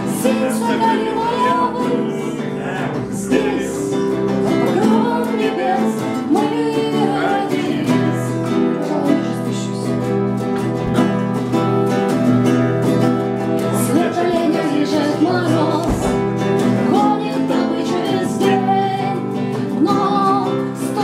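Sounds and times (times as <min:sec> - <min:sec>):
woman singing: 0:00.0 - 0:10.4, 0:13.6 - 0:21.0
acoustic guitars strummed: 0:00.0 - 0:21.0.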